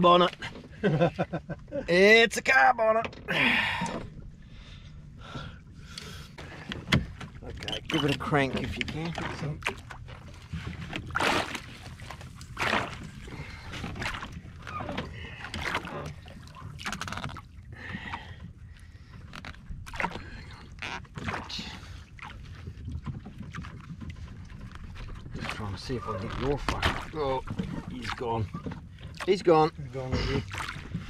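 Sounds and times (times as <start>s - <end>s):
low rumble of wind and water: 0.0s - 31.0s
water splashing against boat: 0.0s - 31.0s
sharp knocks on boat: 6.4s - 7.4s, 10.5s - 13.2s.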